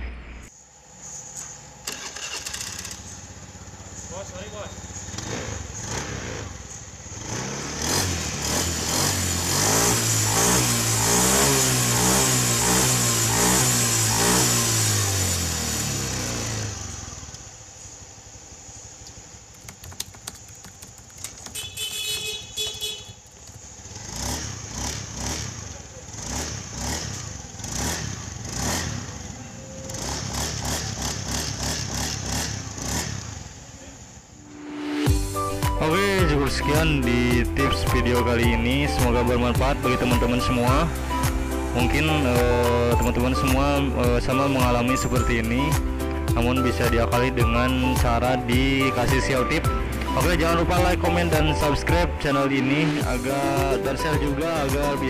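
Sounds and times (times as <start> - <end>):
scooter engine revving: 1.5 - 33.7.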